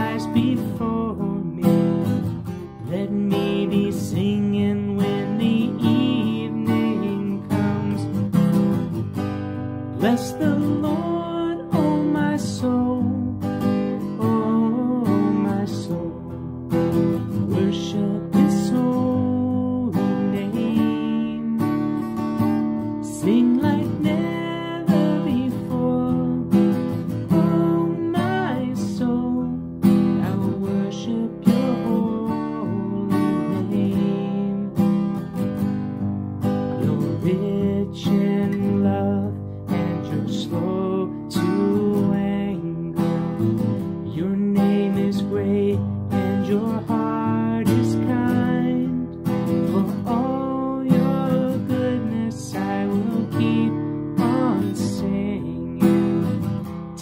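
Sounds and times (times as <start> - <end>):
man singing: 0.0 - 8.7, 9.9 - 35.2, 36.7 - 57.0
acoustic guitar strumming: 0.0 - 57.0.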